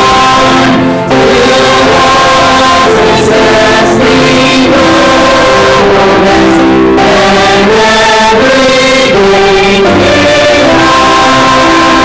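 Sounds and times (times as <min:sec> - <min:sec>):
choir and congregation singing hymn: 0:00.0 - 0:12.0
instrumental accompaniment: 0:00.0 - 0:12.0.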